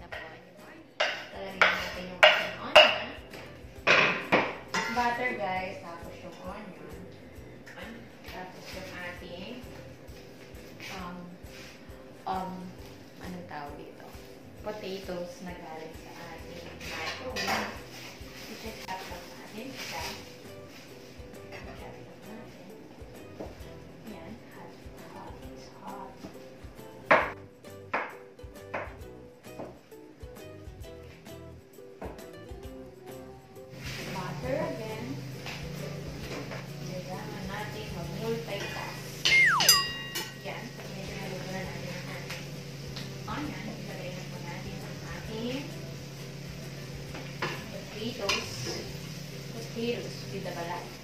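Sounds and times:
light sizzle: 0:33.7 - 0:51.0
utensil clinking against pan: 0:39.7 - 0:40.6.

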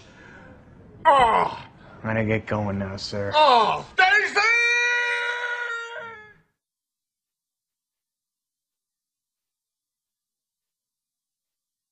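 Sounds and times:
person's high-pitched cry: 0:04.5 - 0:06.4.

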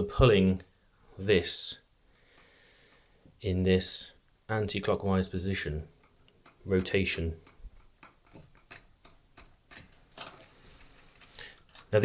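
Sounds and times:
metal tool clicking and clinking: 0:05.9 - 0:12.0.

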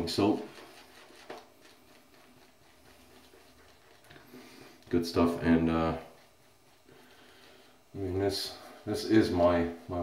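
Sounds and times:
shaving brush swishing: 0:00.0 - 0:10.0.

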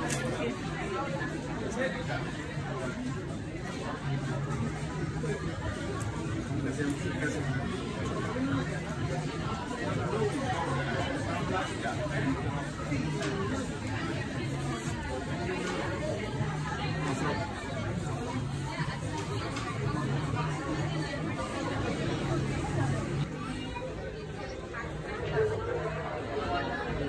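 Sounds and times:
people chattering: 0:00.0 - 0:27.0.

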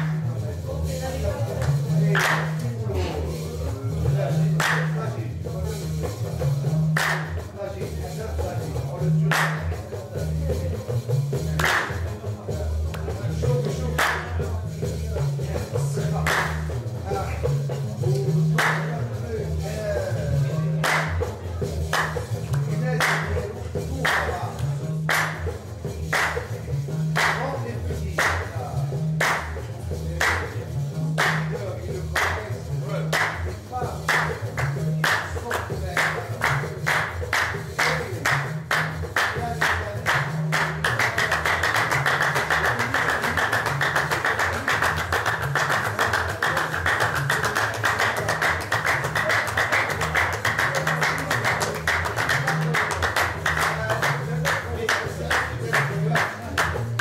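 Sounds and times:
group handclaps: 0:00.0 - 0:00.3, 0:01.5 - 0:03.4, 0:04.1 - 0:05.2, 0:05.8 - 0:12.3, 0:12.9 - 0:14.6, 0:15.5 - 0:19.2, 0:20.3 - 0:57.0
bass lute playing: 0:00.0 - 0:57.0.

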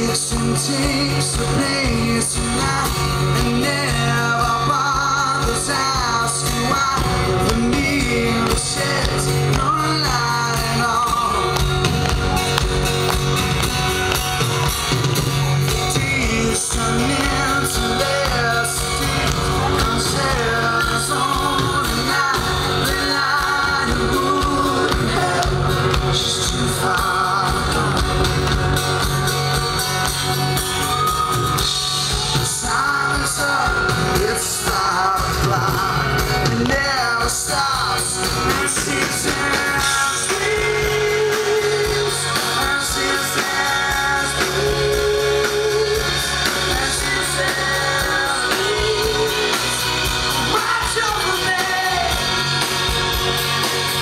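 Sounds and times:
man singing with vibrato: 0:00.0 - 0:11.9, 0:15.5 - 0:29.5, 0:31.1 - 0:54.0
bass guitar: 0:00.0 - 0:54.0
drum kit: 0:00.0 - 0:54.0
keyboard: 0:00.0 - 0:54.0.

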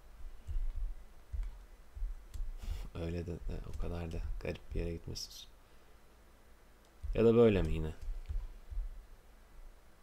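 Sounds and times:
dull low bumps: 0:00.0 - 0:02.6, 0:07.0 - 0:09.1.

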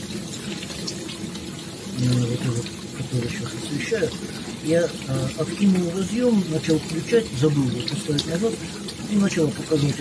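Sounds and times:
dishwasher water rushing: 0:00.0 - 0:10.0.

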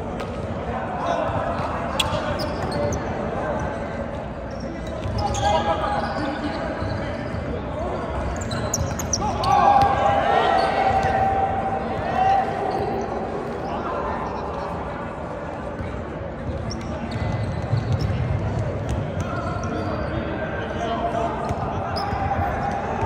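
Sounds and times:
players calling out: 0:04.6 - 0:14.9.

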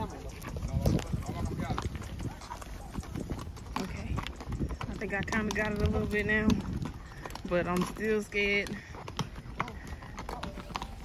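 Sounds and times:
horse hooves clip-clopping on dirt: 0:00.0 - 0:11.0.

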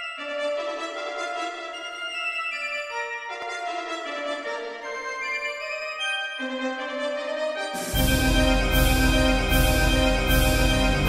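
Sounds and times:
slow organ-like symphonic chords: 0:07.1 - 0:11.0.

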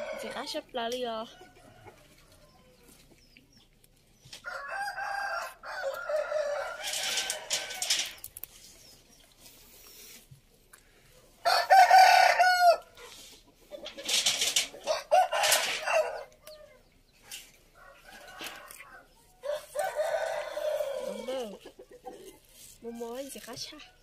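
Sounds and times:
roosters crowing: 0:00.0 - 0:00.6, 0:04.4 - 0:08.3, 0:11.4 - 0:13.2, 0:13.8 - 0:24.0.

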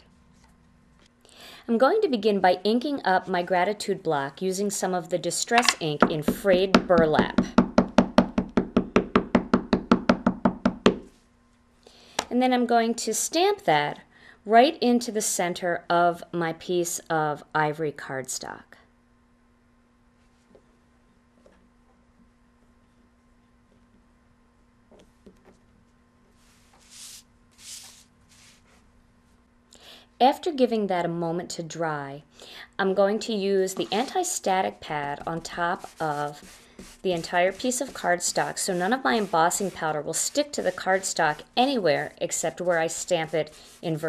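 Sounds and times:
soft swishes of cardstock: 0:25.0 - 0:29.4
paper rustling: 0:26.4 - 0:28.8.

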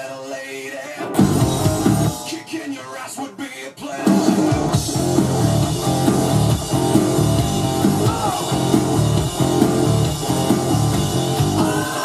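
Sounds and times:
rock backing track: 0:01.0 - 0:02.6, 0:03.9 - 0:12.0
distorted electric guitar riff: 0:01.0 - 0:02.7, 0:04.0 - 0:12.0.

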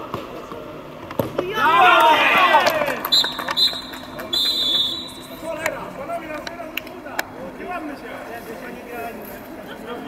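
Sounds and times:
referee's whistle blasts: 0:03.1 - 0:05.4.

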